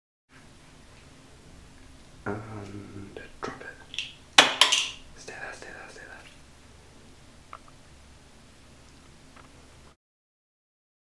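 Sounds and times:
person whispering: 0:02.3 - 0:03.9, 0:05.1 - 0:06.4.

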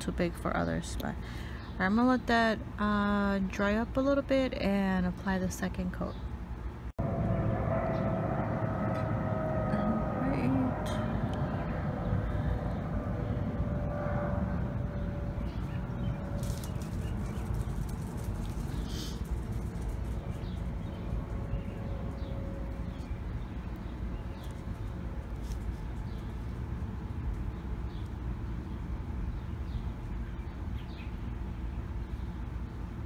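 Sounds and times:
steady low rumble: 0:00.0 - 0:33.0
droning tone falling in pitch: 0:07.0 - 0:17.7, 0:20.4 - 0:25.2.

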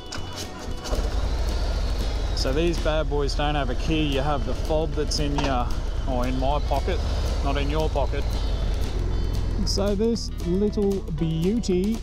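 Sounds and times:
motorcycle idling: 0:00.0 - 0:12.0
motorcycle engine starting: 0:00.6 - 0:12.0.

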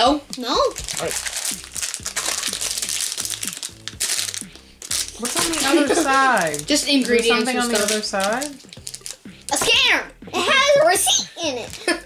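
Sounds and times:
background music: 0:00.0 - 0:12.0
plastic wrapper crinkling: 0:00.3 - 0:09.6, 0:11.6 - 0:12.0.

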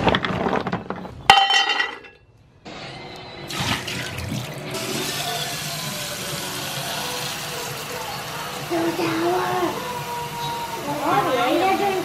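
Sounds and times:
faucet water running into bowl: 0:03.5 - 0:12.0.

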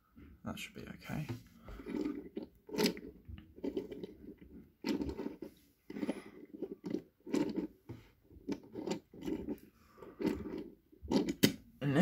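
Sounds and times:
toy forklifts clicking on wood: 0:08.5 - 0:11.6.

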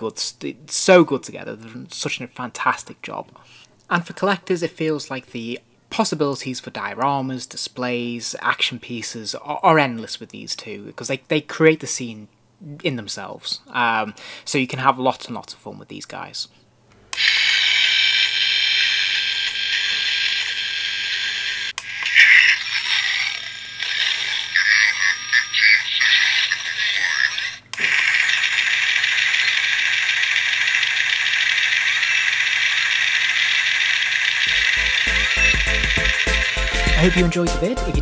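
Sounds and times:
hissy machine whirr: 0:27.8 - 0:37.3
music with low beat: 0:34.5 - 0:38.0.

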